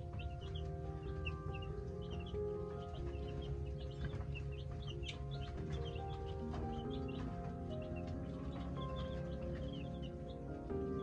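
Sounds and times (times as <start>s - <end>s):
baby chicks peeping: 0.0s - 11.0s
background music: 0.0s - 11.0s.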